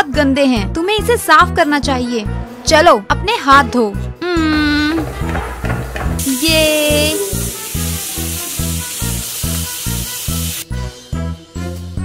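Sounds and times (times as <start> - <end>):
hands rinsed under water: 4.8 - 10.6
tap water running into sink: 4.9 - 10.6.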